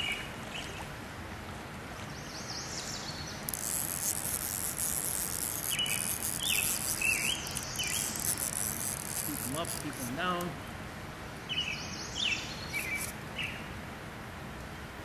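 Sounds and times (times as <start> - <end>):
steady outdoor hiss: 0.0 - 15.0
small birds chirping: 2.2 - 10.6, 11.5 - 13.6
high dense buzz: 3.3 - 11.2.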